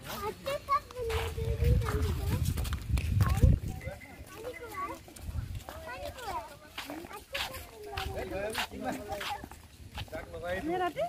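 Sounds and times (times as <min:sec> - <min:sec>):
voices: 0:00.0 - 0:11.0
young children calling and chattering: 0:00.0 - 0:11.0.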